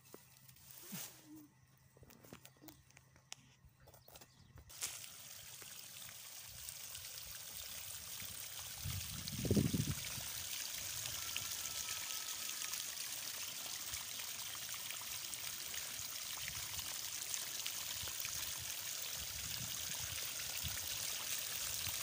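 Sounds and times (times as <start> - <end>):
hose water splashing into soil: 4.7 - 22.0.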